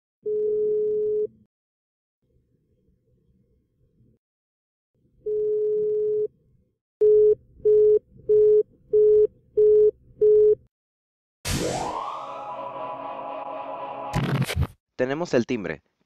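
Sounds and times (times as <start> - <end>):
telephone ring tone beep: 0.3 - 1.3, 7.0 - 10.6.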